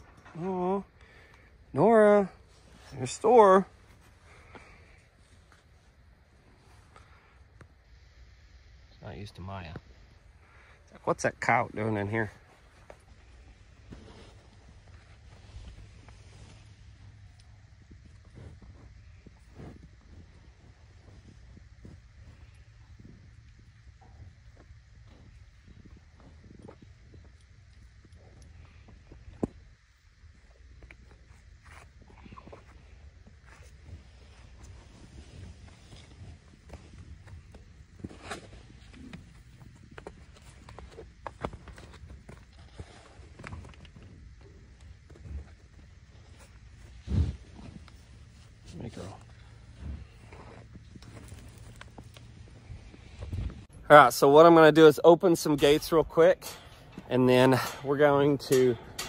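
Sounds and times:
low wind rumble: 0:09.8 - 0:54.3
hoof steps: 0:12.2 - 0:53.9.

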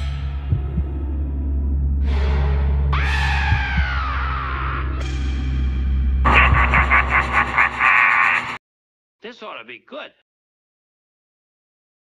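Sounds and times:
cartoon soundtrack music: 0:00.0 - 0:08.6.

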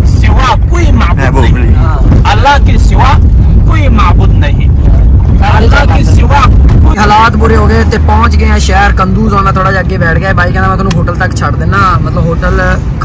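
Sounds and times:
men talking: 0:00.0 - 0:10.0
car engine and road noise: 0:00.0 - 0:13.0.

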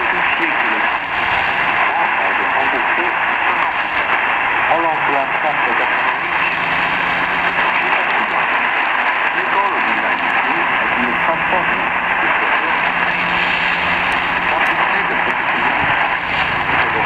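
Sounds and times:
faint voice on radio: 0:00.0 - 0:01.0, 0:01.8 - 0:03.8, 0:04.7 - 0:17.0
radio static hiss: 0:00.0 - 0:17.0.

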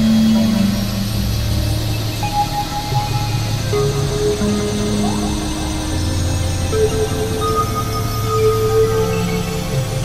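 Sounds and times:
low synthesizer drone: 0:00.0 - 0:10.0
noisy hiss: 0:00.0 - 0:10.0.

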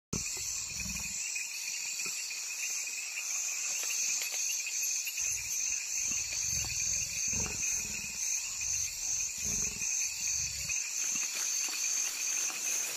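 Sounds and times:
leopard growling: 0:00.2 - 0:01.2, 0:05.2 - 0:11.2
night insects chorus: 0:00.2 - 0:12.9.

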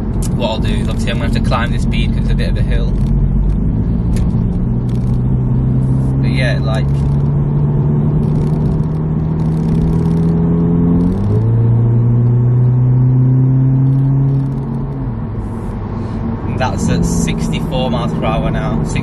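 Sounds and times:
car engine accelerating: 0:00.0 - 0:19.0.

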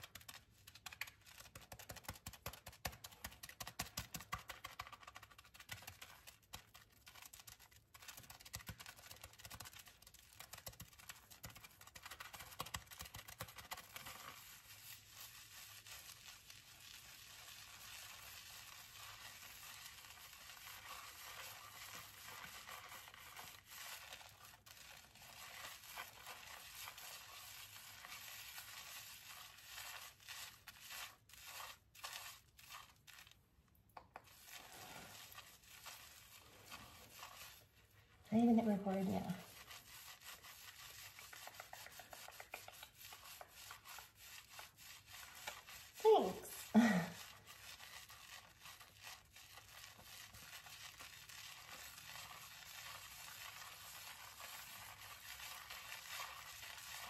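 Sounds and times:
fingers scrubbing lathered hair: 0:00.0 - 0:33.4, 0:34.0 - 0:57.0.

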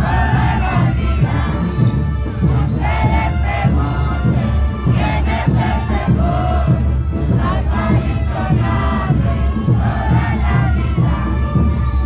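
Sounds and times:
brass band playing: 0:00.0 - 0:12.0
heavy bass drum beat: 0:00.0 - 0:12.0.

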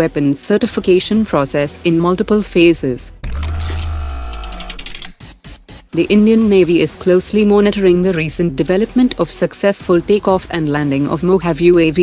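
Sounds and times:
deep bass note: 0:03.2 - 0:05.1
ticking clicks: 0:03.2 - 0:05.2.

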